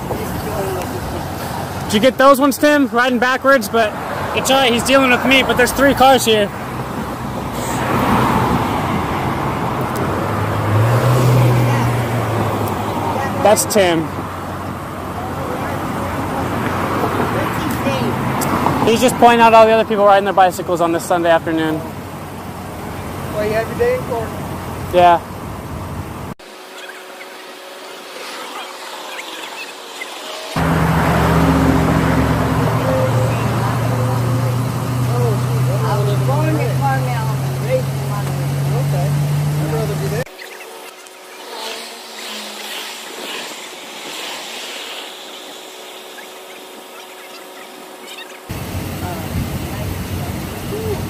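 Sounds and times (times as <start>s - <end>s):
faint street ambience: 0.0s - 51.0s
vehicle engine humming: 0.0s - 51.0s.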